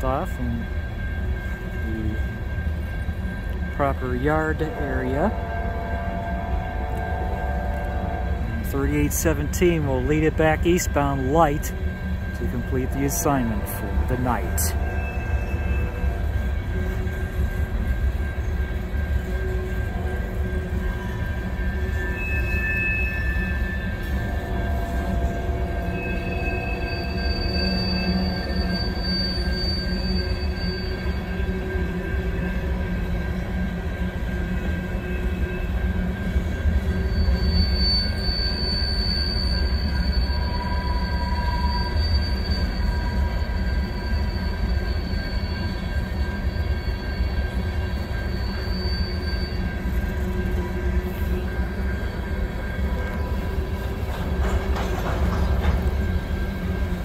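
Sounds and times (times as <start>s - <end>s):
freight train rumbling: 0.0s - 57.0s
train wheels squealing: 0.0s - 57.0s.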